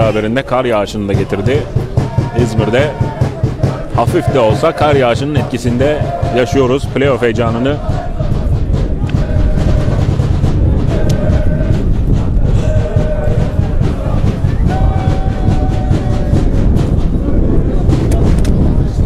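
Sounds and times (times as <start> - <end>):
wind buffeting microphone: 0.0 - 19.0.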